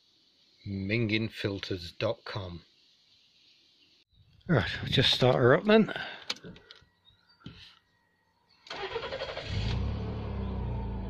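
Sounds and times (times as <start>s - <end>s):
starter motor cranking: 8.7s - 9.9s.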